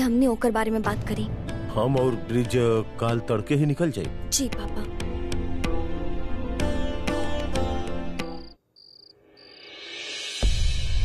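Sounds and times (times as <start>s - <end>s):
plucked-string background music: 1.1s - 8.5s
crickets chirping: 8.2s - 9.9s.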